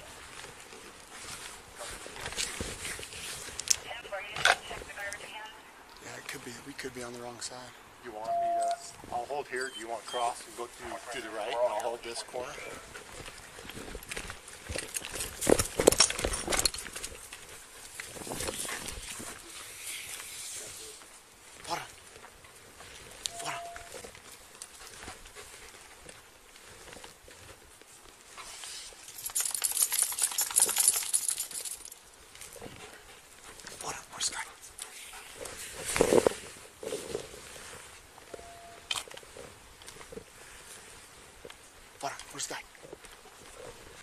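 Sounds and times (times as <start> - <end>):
dog moving near camera: 0.0 - 3.9, 9.8 - 41.8
rustling: 0.0 - 44.0
metallic jingling: 29.0 - 32.1
dog breathing: 32.4 - 37.6.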